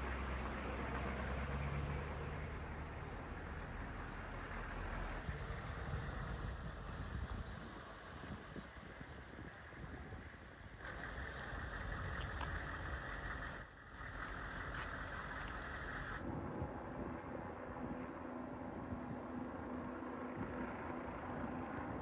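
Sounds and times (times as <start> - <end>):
vehicle engines running: 0.0 - 22.0
tyres on wet pavement: 9.6 - 16.2.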